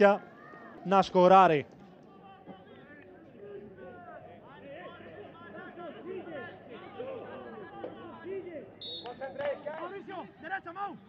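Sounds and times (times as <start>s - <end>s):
referee's whistle blast: 8.8s - 9.2s.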